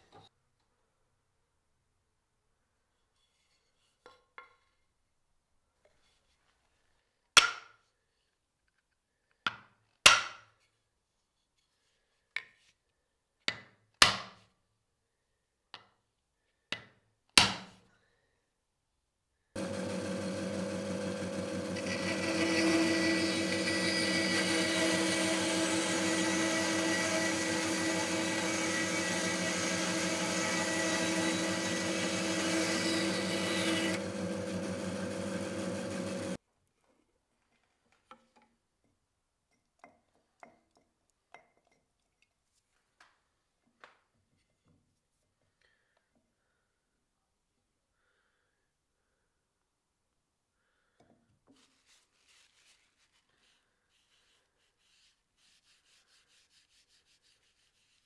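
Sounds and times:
bandsaw cutting wood: 19.6s - 36.4s.

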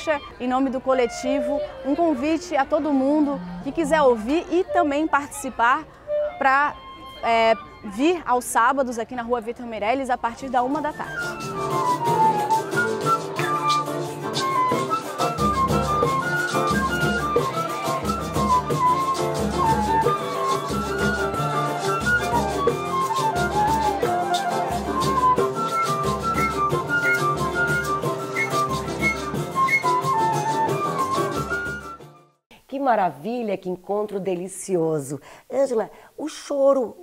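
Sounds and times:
flute melody: 0.0s - 2.8s, 4.4s - 8.4s, 10.4s - 32.4s
acoustic guitar accompaniment: 10.6s - 32.3s.

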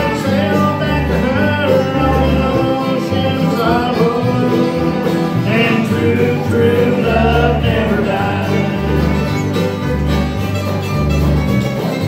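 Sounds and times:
men singing: 0.0s - 9.6s
bluegrass band playing: 0.0s - 12.0s
upright bass low notes: 0.0s - 12.0s.

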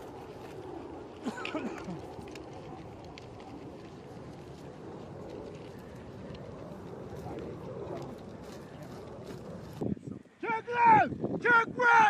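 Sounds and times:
footsteps on dry grass: 0.0s - 10.0s
steady outdoor rumble: 0.0s - 12.0s.

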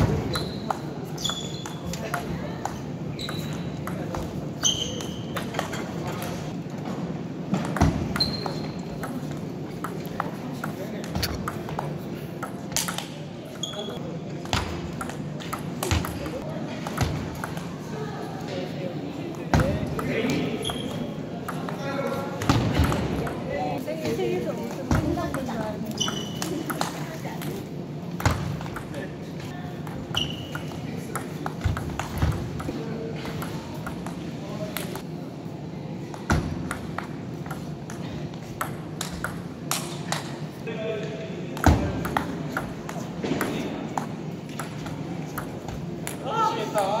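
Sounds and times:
ping pong ball clicking off paddles: 7.6s - 13.2s, 36.1s - 40.3s, 41.6s - 46.2s.

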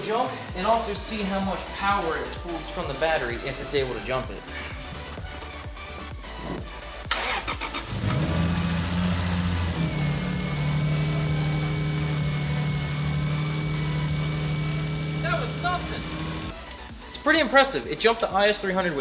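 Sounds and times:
car engine starting and idling: 7.0s - 16.6s
starter motor cranking: 7.1s - 16.5s.

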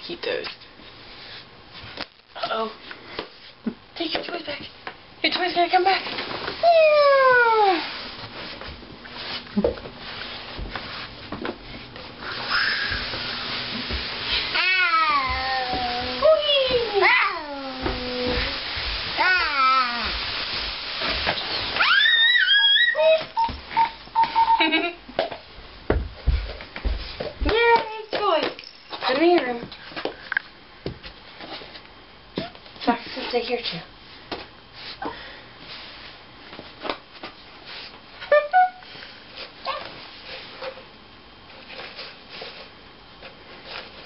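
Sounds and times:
baby squealing: 12.3s - 13.0s, 21.8s - 24.6s.

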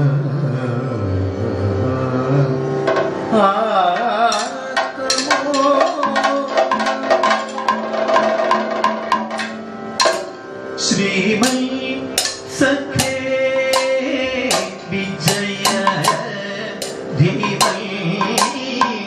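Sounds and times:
man singing: 0.0s - 7.9s, 10.8s - 19.0s
drum strokes: 2.9s - 3.2s, 4.0s - 10.5s, 11.4s - 19.0s
hand cymbals striking: 4.0s - 10.6s, 11.4s - 19.0s.

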